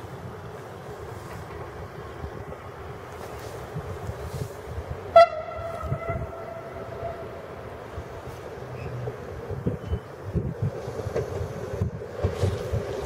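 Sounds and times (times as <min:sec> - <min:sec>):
railcar horn blast: 0:05.1 - 0:07.4.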